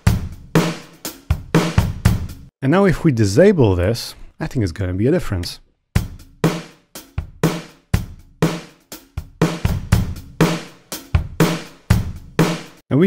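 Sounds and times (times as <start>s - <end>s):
drum kit playing a beat: 0.0s - 2.5s, 6.0s - 12.9s.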